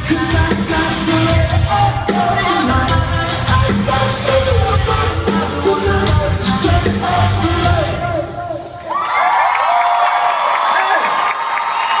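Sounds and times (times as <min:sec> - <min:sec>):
band music: 0:00.0 - 0:09.0
crowd cheering and screaming: 0:08.1 - 0:12.0.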